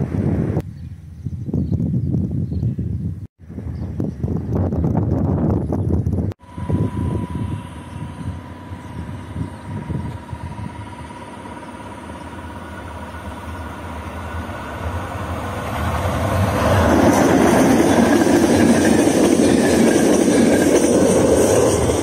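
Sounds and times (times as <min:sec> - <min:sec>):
passenger train passing: 0:06.2 - 0:22.0.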